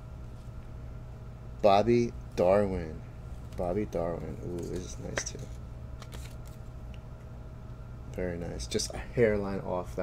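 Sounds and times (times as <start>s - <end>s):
low steady hum: 0.0s - 10.0s
plastic sleeve rustling: 6.0s - 6.6s.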